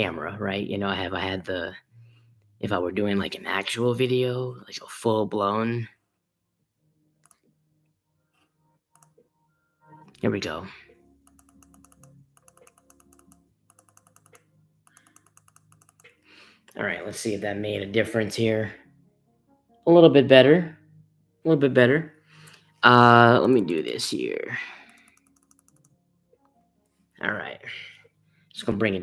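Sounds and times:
computer mouse clicks: 0:07.2 - 0:07.5, 0:08.9 - 0:09.2, 0:11.2 - 0:16.2, 0:24.9 - 0:26.0.

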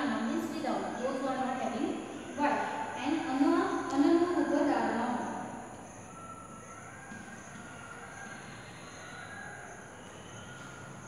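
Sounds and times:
faint high-pitched tones: 0:00.0 - 0:11.0.

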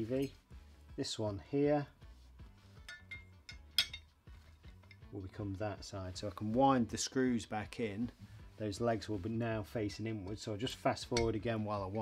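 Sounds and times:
metal bracket clicks and clinks: 0:02.8 - 0:05.1, 0:11.1 - 0:11.5.

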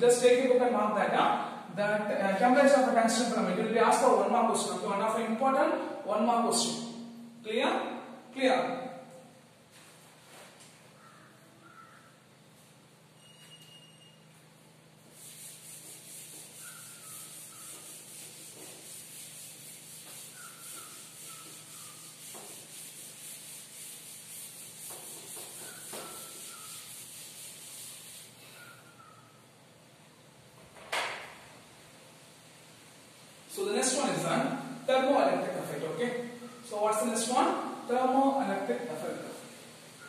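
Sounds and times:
duster rubbing chalkboard: 0:15.0 - 0:29.1.

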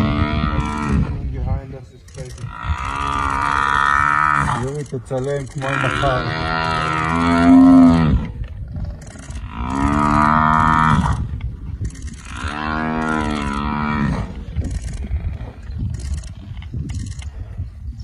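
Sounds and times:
buffalo bellowing in distress: 0:02.4 - 0:04.7, 0:05.6 - 0:08.3, 0:12.1 - 0:15.4.

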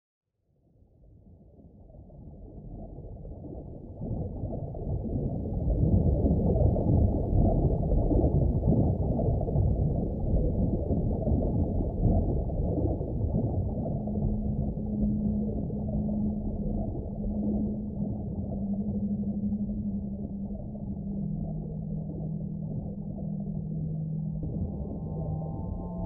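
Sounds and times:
muffled low underwater rumble: 0:00.6 - 0:26.0
steady low hum: 0:10.4 - 0:26.0.

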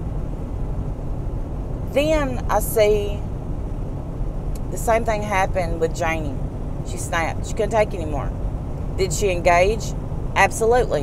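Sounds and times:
low rumble inside car cabin: 0:00.0 - 0:11.0.

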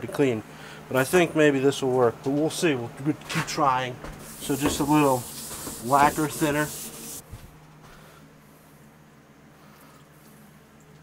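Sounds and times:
liquid splashing on metal: 0:04.2 - 0:07.2
rag wiping metal: 0:04.2 - 0:07.2.

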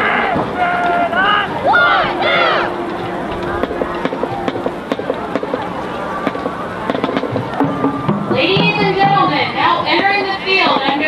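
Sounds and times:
crowd chatter: 0:00.0 - 0:11.0
drumline tapping a beat: 0:02.2 - 0:11.0.

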